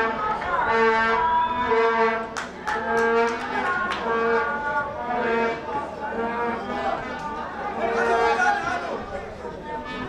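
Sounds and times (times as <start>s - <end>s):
crowd voices: 0.0s - 10.0s
fans blowing horns: 0.0s - 10.0s.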